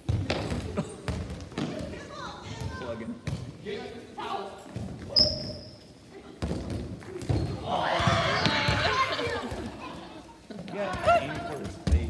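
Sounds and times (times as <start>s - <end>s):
balls bouncing on hard floor: 0.0s - 3.6s, 6.4s - 9.8s, 10.5s - 12.0s.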